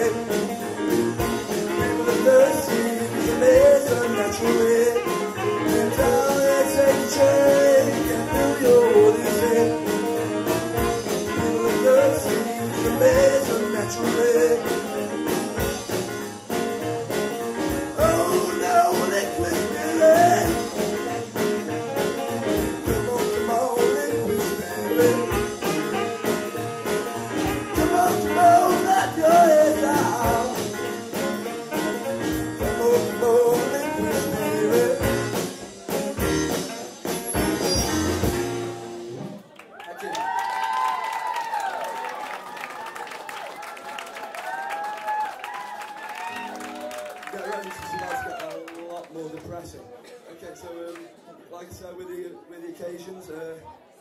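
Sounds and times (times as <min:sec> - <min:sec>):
male lead vocal: 0:00.0 - 0:15.2, 0:17.9 - 0:21.4, 0:22.2 - 0:31.3, 0:32.6 - 0:35.6
electric guitar: 0:00.0 - 0:39.4
saxophone: 0:00.0 - 0:39.4
electric piano: 0:00.0 - 0:39.5
live soul-jazz band: 0:00.0 - 0:39.7, 0:43.4 - 0:48.7
drums: 0:00.0 - 0:42.9, 0:44.0 - 0:48.6.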